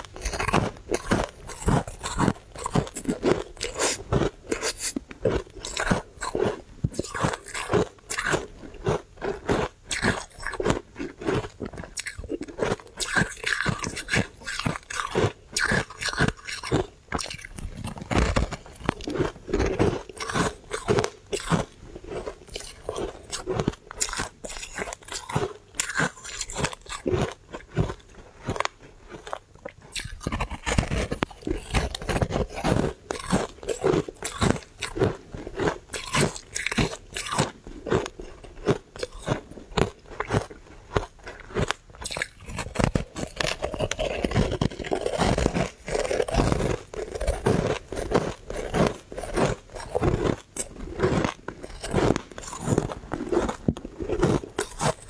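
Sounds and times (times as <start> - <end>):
crunching and chewing ice: 0.0 - 55.0.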